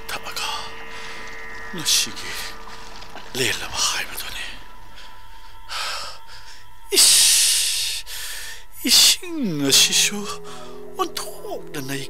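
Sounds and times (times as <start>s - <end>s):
narrator speaking: 0.0s - 1.0s, 1.7s - 2.6s, 3.2s - 4.7s, 8.8s - 12.0s
recording hiss and hum: 0.0s - 12.0s.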